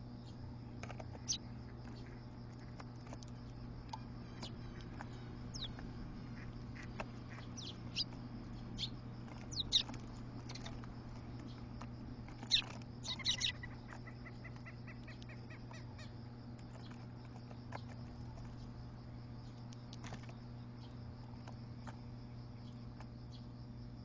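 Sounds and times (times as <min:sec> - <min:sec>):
sparrows chirping: 0:00.0 - 0:23.9.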